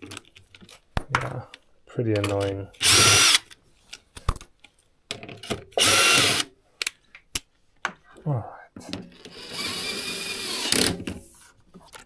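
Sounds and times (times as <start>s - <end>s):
cordless drill spinning: 2.8s - 3.4s, 5.8s - 6.5s, 9.2s - 11.0s.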